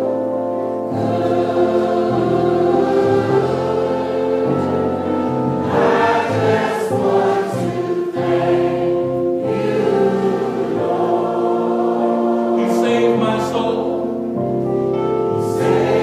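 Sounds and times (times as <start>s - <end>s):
congregation singing gospel: 0.7s - 16.0s.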